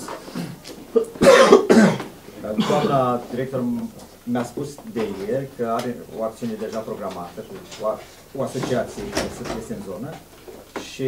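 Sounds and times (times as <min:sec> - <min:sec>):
person coughing: 0:00.3 - 0:03.1.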